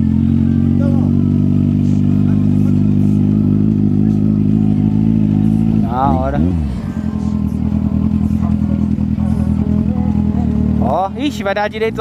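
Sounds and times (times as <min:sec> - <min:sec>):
motorcycle engine running steadily: 0:00.0 - 0:12.0.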